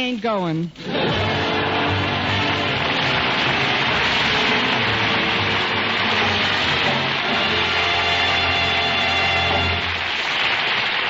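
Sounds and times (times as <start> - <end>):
orchestra playing: 0.9 - 10.2.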